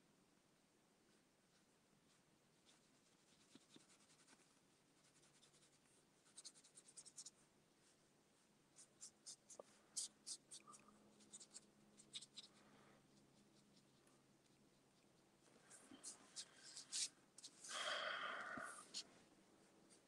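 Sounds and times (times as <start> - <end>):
pen nib scratching on paper: 5.0 - 7.4, 8.8 - 15.2.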